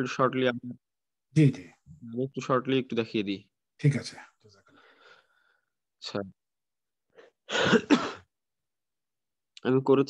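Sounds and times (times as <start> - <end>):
person clearing throat: 7.5 - 8.3.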